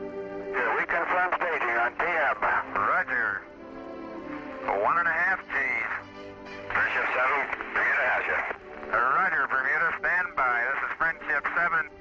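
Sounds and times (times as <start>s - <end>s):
music: 0.0s - 12.0s
man speaking over distorted radio: 0.6s - 3.4s, 4.6s - 6.0s, 6.7s - 11.9s.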